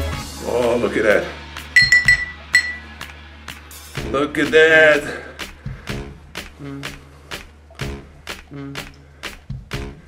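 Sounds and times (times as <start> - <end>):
background music: 0.0 - 10.0
bottle clinking against glass: 1.8 - 3.0.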